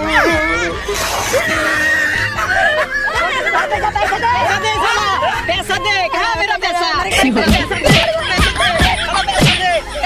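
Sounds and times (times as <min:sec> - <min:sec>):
background music: 0:00.0 - 0:10.0
people shouting and yelling: 0:00.0 - 0:10.0.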